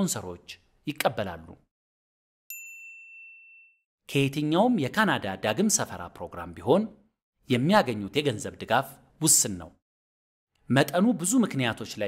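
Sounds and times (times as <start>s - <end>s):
bright bell-like chime: 2.5s - 3.9s.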